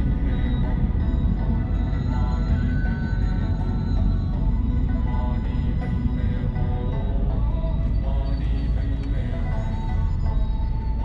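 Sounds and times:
car driving rumble: 0:00.0 - 0:11.0
music with held tones: 0:00.0 - 0:11.0.

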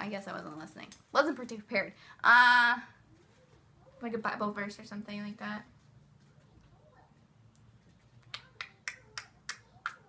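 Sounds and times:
fingers snapping: 0:08.2 - 0:10.0.

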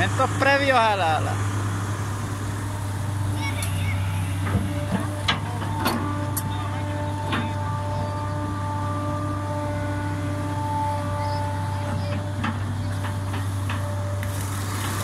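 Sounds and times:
diesel engine running: 0:00.0 - 0:15.0.

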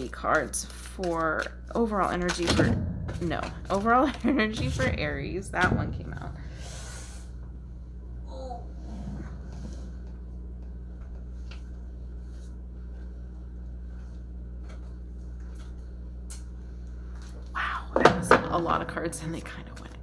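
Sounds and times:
cards clicking and rustling: 0:00.0 - 0:02.5
low electrical hum: 0:00.0 - 0:20.0.

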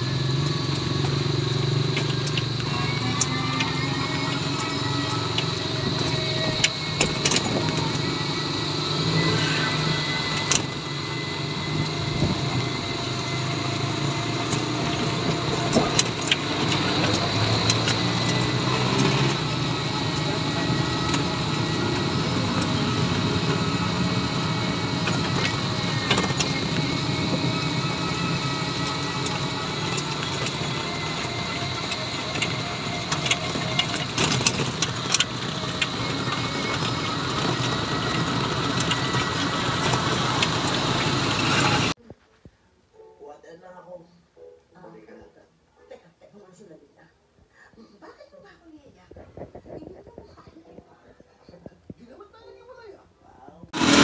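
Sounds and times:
traffic engines: 0:00.0 - 0:42.0, 0:53.7 - 0:54.0.

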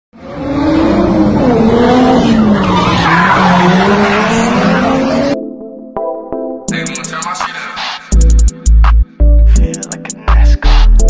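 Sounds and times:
car tyres squealing: 0:01.4 - 0:05.3
electronic music notes: 0:03.8 - 0:11.0.

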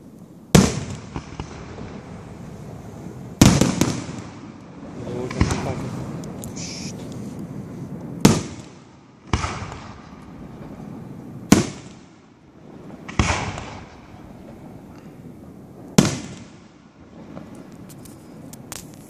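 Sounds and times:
firework shells bursting: 0:03.4 - 0:12.3, 0:12.9 - 0:19.0.

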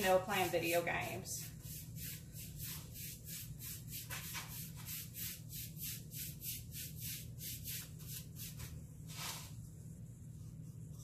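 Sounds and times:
steady low hum: 0:00.0 - 0:11.0
paintbrush brushing on wood: 0:00.9 - 0:09.7.

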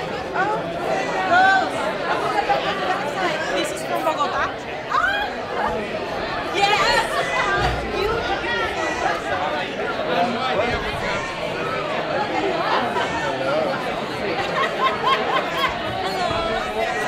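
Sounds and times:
crowd chatter: 0:00.0 - 0:17.0.

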